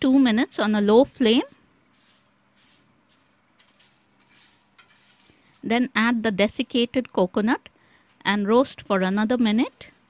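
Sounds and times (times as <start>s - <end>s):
spatula scraping spices in pan: 1.0s - 7.1s, 8.7s - 10.0s.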